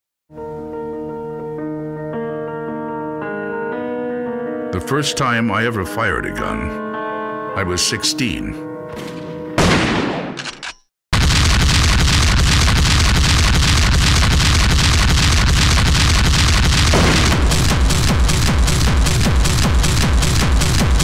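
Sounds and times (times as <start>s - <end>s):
fast heavy kick-drum beat: 13.0s - 21.0s
dense electronic music: 15.8s - 21.0s.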